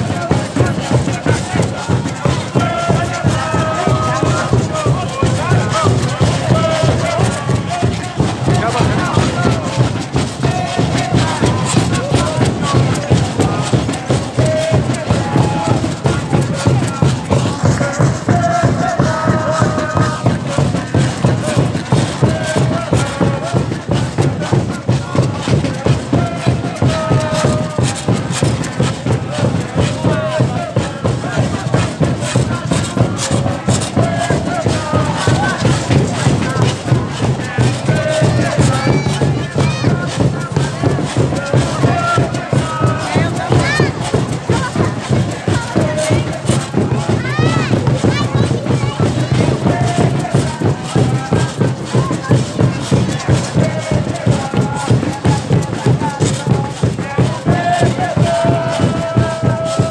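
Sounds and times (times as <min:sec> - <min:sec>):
hand drums: 0:00.0 - 0:59.9
scrapers rhythm: 0:00.0 - 0:59.9.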